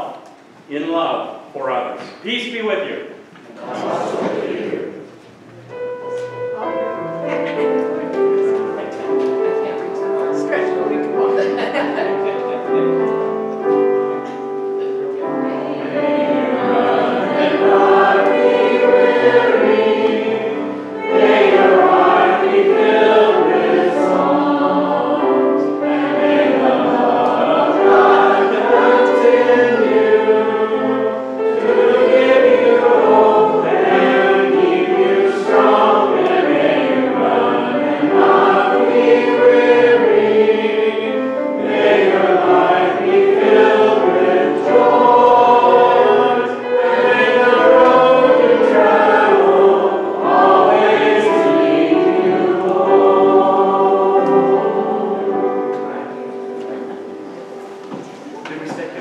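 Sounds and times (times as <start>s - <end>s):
congregation singing a hymn: 0.0s - 59.0s
piano accompaniment: 2.2s - 59.0s.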